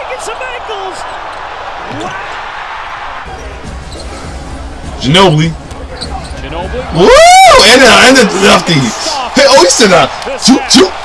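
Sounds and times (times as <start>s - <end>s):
arena crowd roar: 0.0s - 3.8s, 6.5s - 11.0s.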